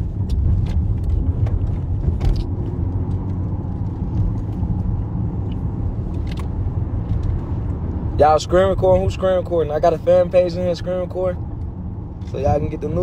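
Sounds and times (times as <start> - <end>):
car rumbling from inside cabin: 0.0 - 13.0.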